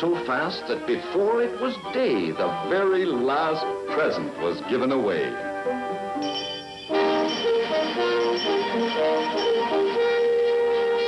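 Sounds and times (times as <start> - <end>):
brisk cartoon music: 0.0 - 11.0.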